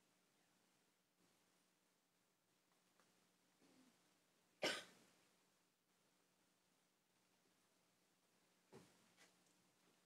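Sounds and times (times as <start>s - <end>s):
person coughing: 4.6s - 5.0s.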